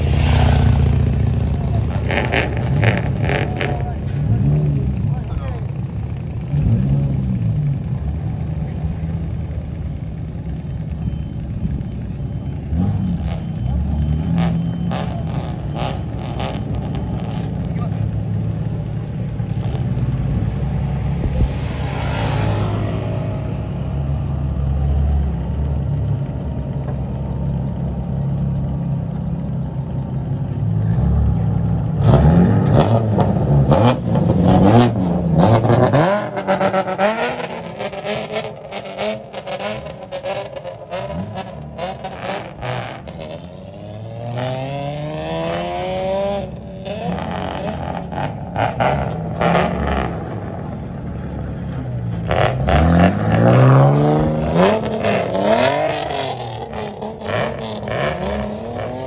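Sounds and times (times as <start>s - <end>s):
car engines idling and revving: 0.0s - 59.0s.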